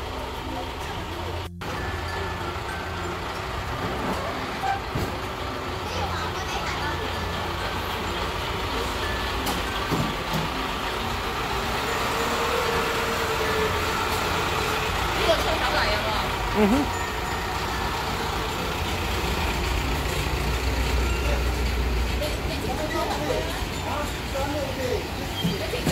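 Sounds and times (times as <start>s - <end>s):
indistinct voices: 0.0s - 25.9s.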